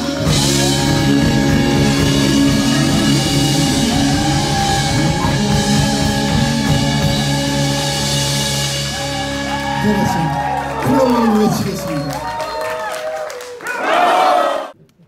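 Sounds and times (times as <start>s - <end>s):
drum kit: 0.0s - 12.4s
electric guitars: 0.0s - 12.6s.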